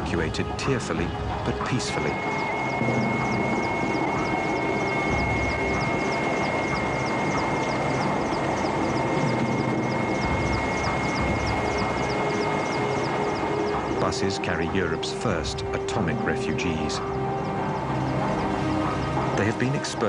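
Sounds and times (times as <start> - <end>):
aircraft engine droning: 0.0 - 20.0.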